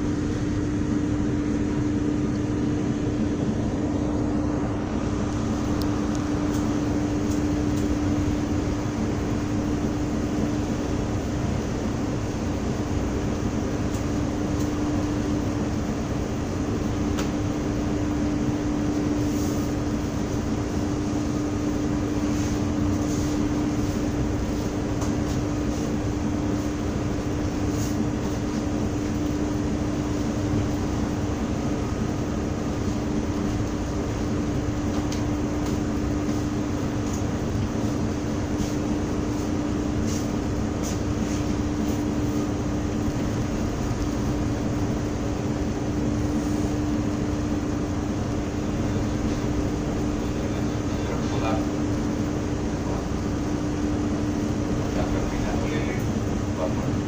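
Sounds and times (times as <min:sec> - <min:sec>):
ship engine droning: 0:00.0 - 0:57.0.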